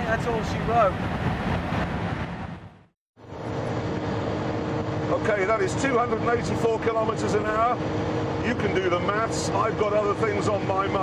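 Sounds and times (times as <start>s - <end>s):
wind and tyre noise: 0.0s - 11.0s
car engine drone: 0.9s - 11.0s.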